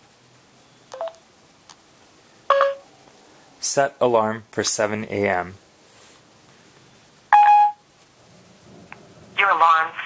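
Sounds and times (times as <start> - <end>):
electronic prompt beeps: 0.9 - 1.2, 2.5 - 2.8, 7.3 - 7.8.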